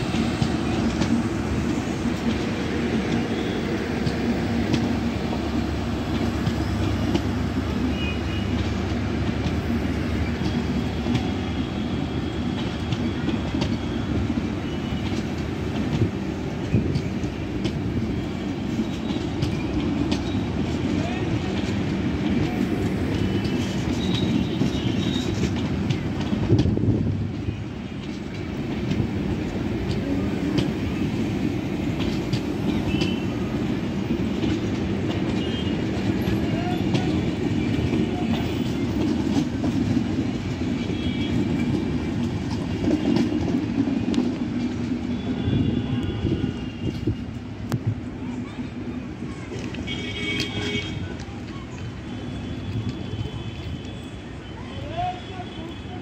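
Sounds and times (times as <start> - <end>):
wheels clicking over rail joints: 0.0 - 55.7
train wheels rumbling on rail: 0.0 - 56.0.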